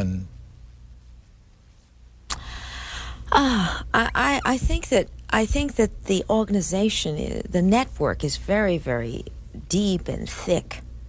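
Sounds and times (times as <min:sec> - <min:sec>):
steady low hum: 0:00.0 - 0:11.0
breathy intake of breath: 0:02.4 - 0:03.2.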